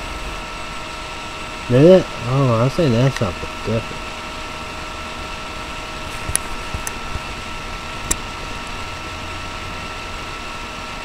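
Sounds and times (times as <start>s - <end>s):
background hum: 0.0s - 11.0s
thin high whine: 0.0s - 11.0s.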